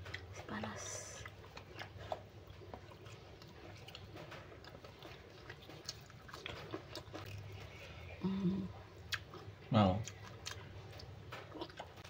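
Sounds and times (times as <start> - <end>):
person chewing food: 0.0 - 12.0.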